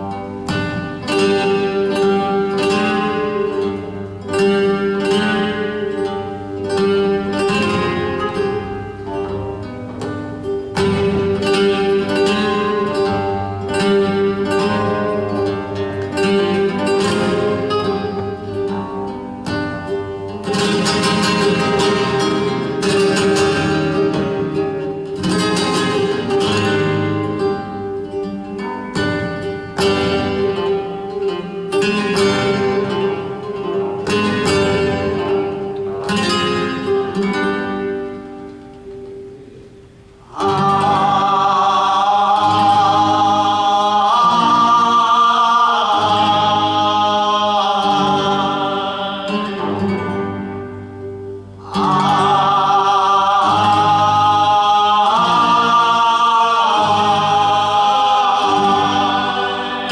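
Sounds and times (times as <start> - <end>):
oud and guitar playing: 0.0 - 59.9.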